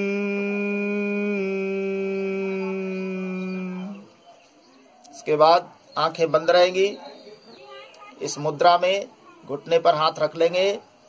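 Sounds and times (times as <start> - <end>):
man humming low closed-mouth: 0.0 - 4.2.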